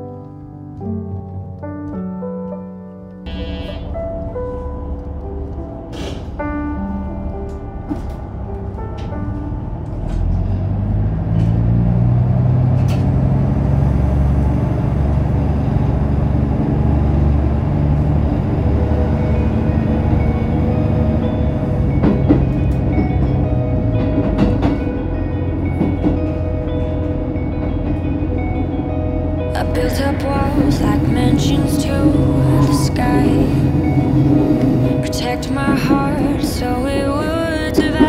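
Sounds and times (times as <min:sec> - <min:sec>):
background music: 0:00.0 - 0:15.2, 0:15.8 - 0:38.0
diesel railcar engine: 0:03.3 - 0:38.0.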